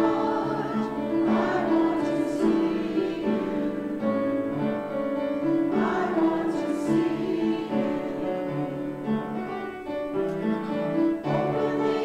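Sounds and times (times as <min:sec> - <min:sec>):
church choir singing a hymn: 0:00.0 - 0:10.1, 0:10.9 - 0:12.0
piano: 0:00.0 - 0:12.0.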